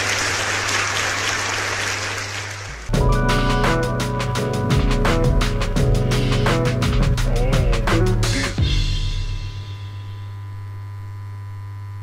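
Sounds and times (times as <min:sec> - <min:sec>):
low electronic hum: 0:02.8 - 0:12.0.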